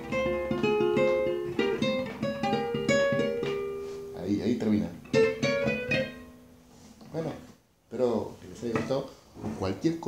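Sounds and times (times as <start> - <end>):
acoustic guitar playing: 0.0 - 7.6.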